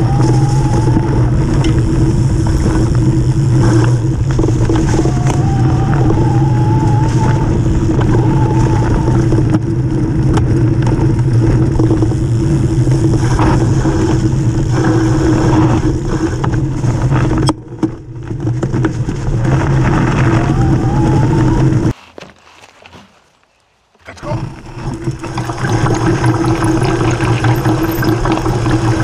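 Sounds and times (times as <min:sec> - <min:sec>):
faint wavering whine: 0:00.0 - 0:10.2
bike rattling: 0:00.0 - 0:29.0
bike tyre rumble on gravel: 0:00.0 - 0:29.0.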